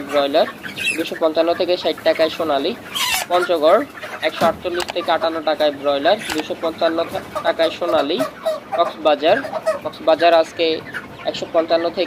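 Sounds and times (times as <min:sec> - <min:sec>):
chickens calling: 0:00.0 - 0:12.0.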